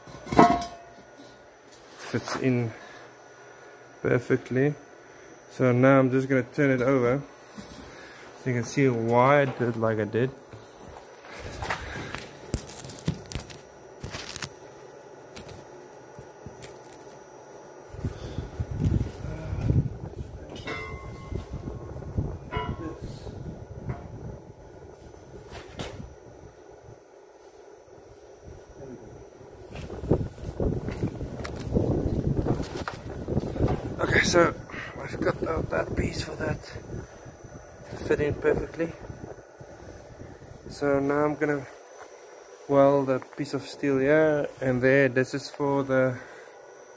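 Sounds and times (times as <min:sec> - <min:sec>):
metallic ring: 0:00.0 - 0:03.2, 0:16.6 - 0:26.2.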